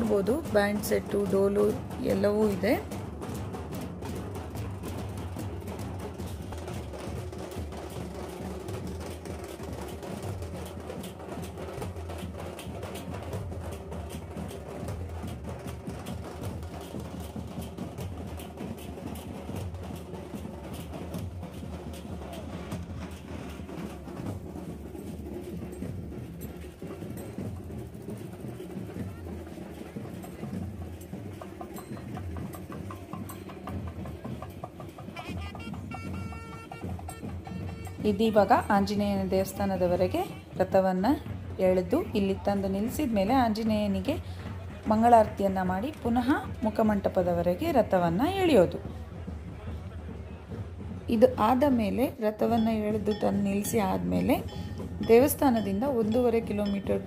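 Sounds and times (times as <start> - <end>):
steel drums beaten rapidly: 0.0 - 57.0.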